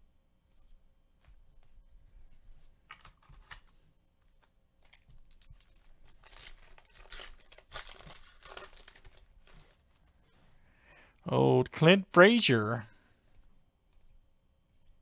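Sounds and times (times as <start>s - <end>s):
cards rustling: 2.8s - 10.3s
foil pack crinkling and tearing: 4.8s - 10.0s.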